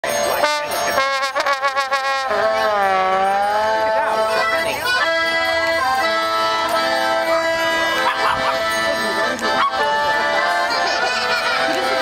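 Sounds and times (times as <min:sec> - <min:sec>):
accordion and trombone playing: 0:00.0 - 0:12.0.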